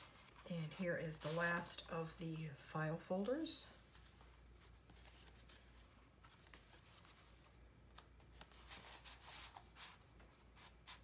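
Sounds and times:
album pages rustling: 0.0s - 1.9s, 3.8s - 10.5s.

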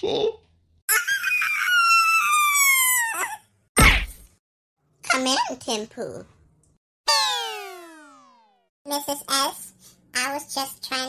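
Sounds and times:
cartoon character screaming: 0.9s - 3.4s.

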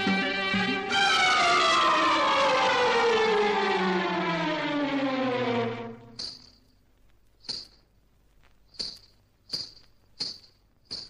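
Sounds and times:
siren-like tone gliding down: 0.0s - 6.2s.

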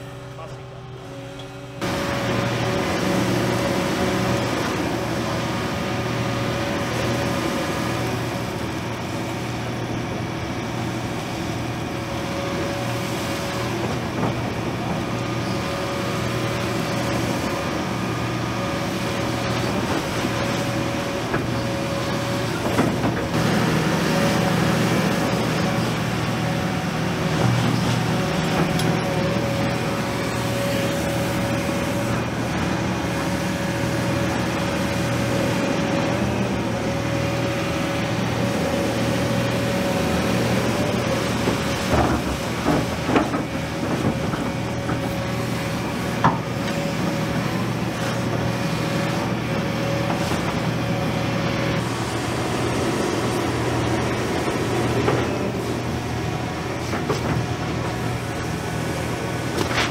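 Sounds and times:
excavator diesel engine whining: 0.0s - 59.9s.

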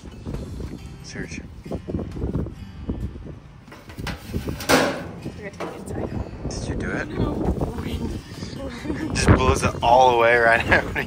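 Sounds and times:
metal tray scraping: 3.8s - 6.1s.

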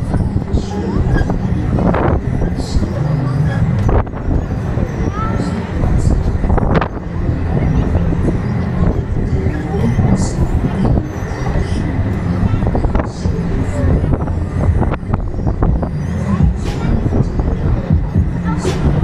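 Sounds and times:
fairground ride rumble: 0.0s - 19.0s.

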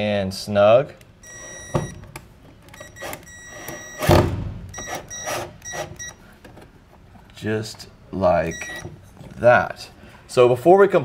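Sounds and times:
loud thump: 4.0s - 4.8s.

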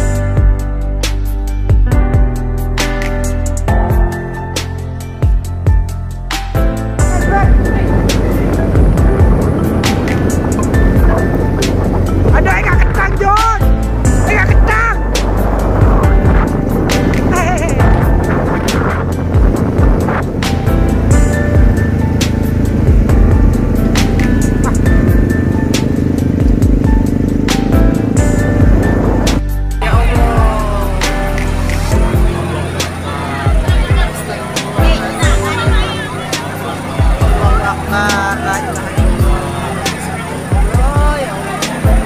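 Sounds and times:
background music: 0.0s - 42.0s
motorcycle engine running: 3.3s - 42.0s
wind buffeting microphone: 7.0s - 29.4s.

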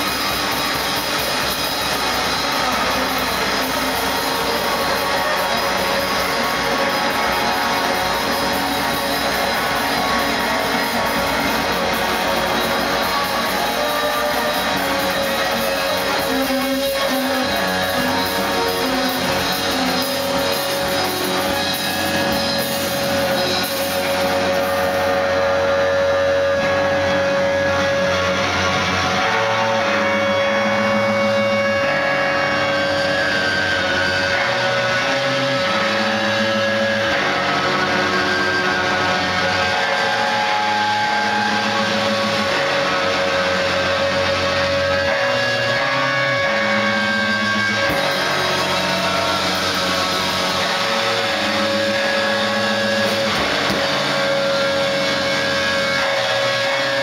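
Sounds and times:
distorted guitar wall: 0.0s - 57.0s
noise-rock band playing live: 0.0s - 57.0s
steady high tone: 0.0s - 57.0s.

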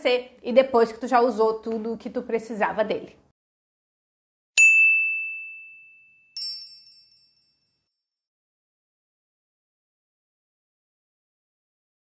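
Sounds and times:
bell-like ding: 4.6s - 8.0s
sparkly chime: 4.6s - 8.0s.

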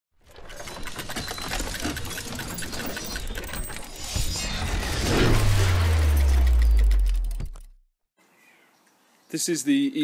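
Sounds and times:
rapid mechanical clicking: 0.4s - 4.1s.

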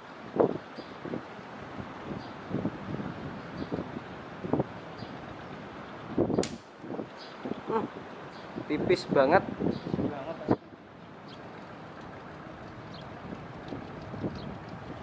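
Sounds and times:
catapult band release snap: 6.4s - 6.7s.

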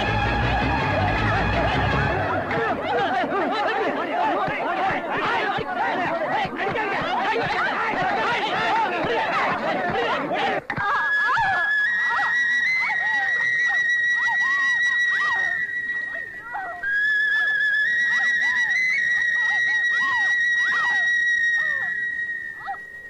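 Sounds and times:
high wavering whistle tones: 10.8s - 23.0s.

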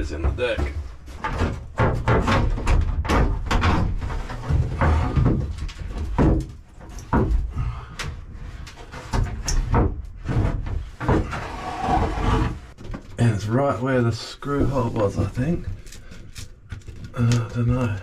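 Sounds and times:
plastic liner knocks and rattles: 0.1s - 11.3s.

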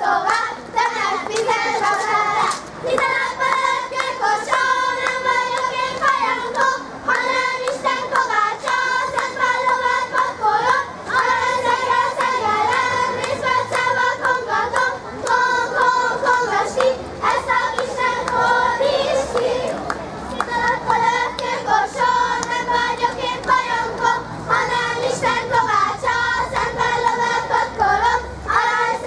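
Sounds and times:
girls singing in unison: 0.0s - 29.0s.

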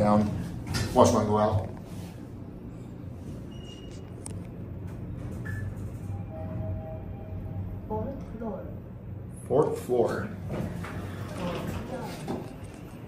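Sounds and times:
elevator car humming: 3.2s - 13.0s.

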